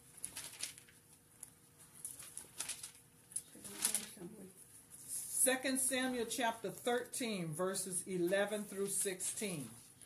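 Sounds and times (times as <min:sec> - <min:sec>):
book pages flicking and rustling: 0:00.0 - 0:04.2.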